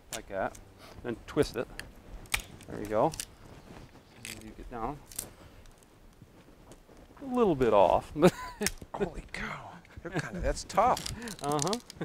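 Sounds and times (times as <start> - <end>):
fibres ticking: 1.3 - 12.0
bamboo cracking: 1.7 - 7.4, 8.6 - 8.9, 10.8 - 12.0.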